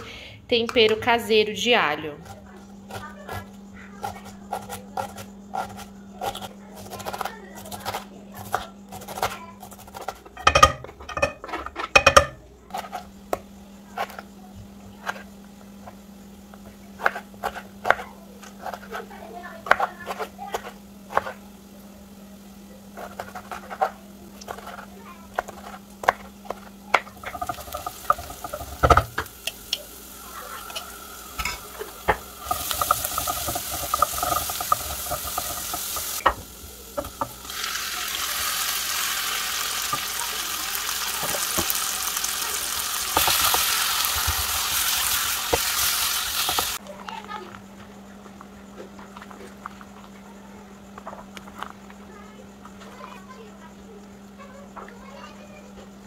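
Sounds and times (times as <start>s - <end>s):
wooden spoon stirring in pot: 2.2s - 40.2s
garlic sizzling in oil: 12.0s - 46.8s.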